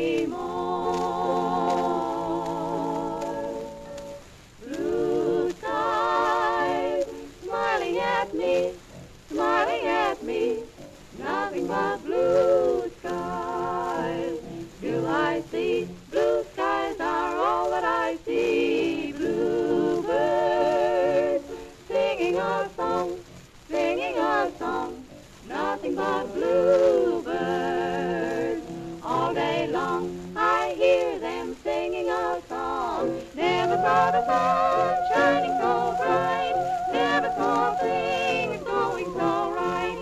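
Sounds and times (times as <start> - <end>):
female trio singing in harmony: 0.0 - 40.0.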